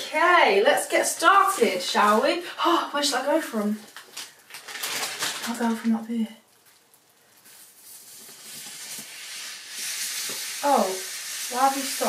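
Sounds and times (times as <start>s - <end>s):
aerosol foam can hissing: 8.0s - 12.0s.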